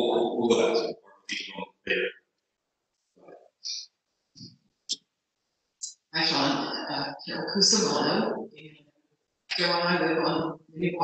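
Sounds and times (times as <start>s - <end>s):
faint brief voice sounds: 0.0s - 2.1s.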